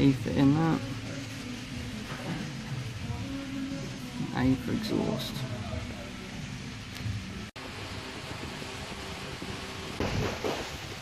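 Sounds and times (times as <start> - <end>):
low background hum and hiss: 0.0 - 11.0.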